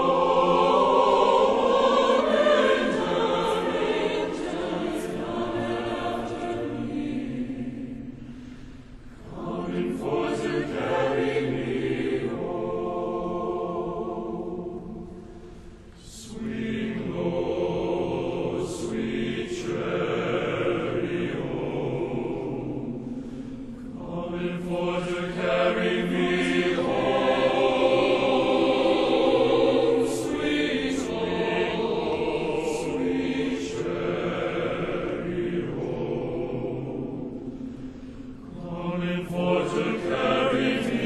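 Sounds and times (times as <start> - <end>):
large choir singing: 0.0 - 41.0.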